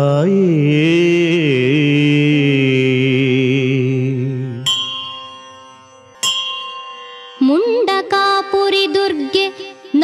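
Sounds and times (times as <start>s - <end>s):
bell ringing: 4.5s - 10.0s.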